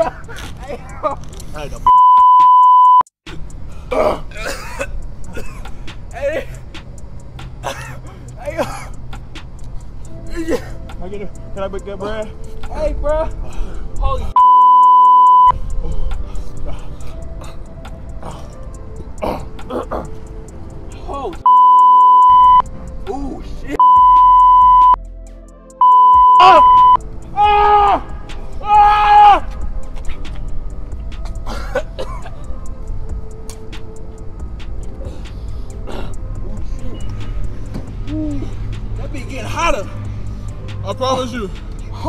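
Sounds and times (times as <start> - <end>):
censor bleep tone: 1.9 - 3.1, 14.4 - 15.5, 21.5 - 22.6, 23.8 - 25.0, 25.8 - 27.0
man coughing: 3.9 - 6.6, 7.6 - 9.0, 10.3 - 10.8, 19.2 - 20.2, 31.4 - 32.4
person exclaiming: 21.0 - 21.4, 26.4 - 28.0.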